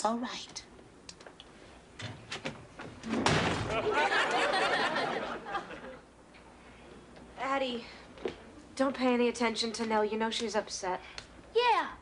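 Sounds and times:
door slamming shut: 3.1s - 3.8s
studio audience laughter: 3.7s - 6.0s.

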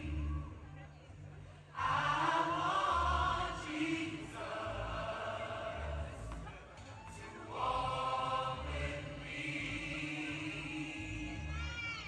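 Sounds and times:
gospel choir singing: 0.0s - 0.3s, 1.8s - 6.4s, 7.1s - 11.6s.

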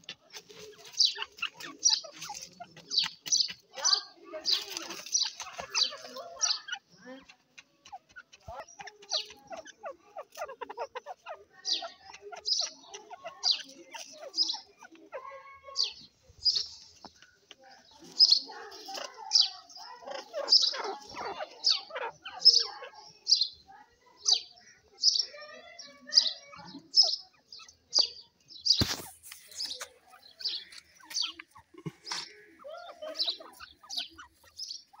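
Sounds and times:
soft low chattering: 0.0s - 35.0s
birds calling high notes: 0.6s - 35.0s.

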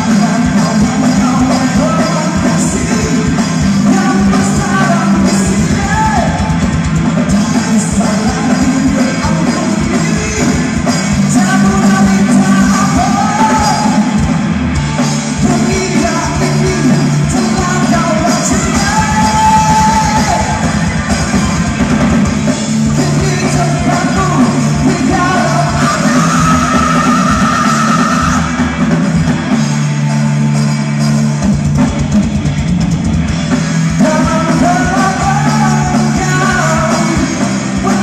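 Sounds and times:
person singing: 0.0s - 6.7s, 7.3s - 14.4s, 15.0s - 21.5s, 22.7s - 28.8s, 33.9s - 38.0s
distorted electric guitars: 0.0s - 38.0s
drum kit: 0.0s - 38.0s.

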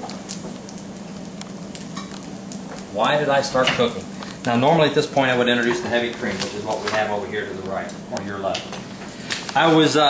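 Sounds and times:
potato slices frying in pan: 0.0s - 10.0s.

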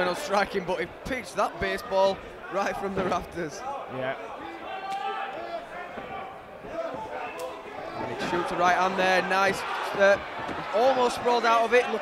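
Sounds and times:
voices shouting in a hall: 1.6s - 12.0s.

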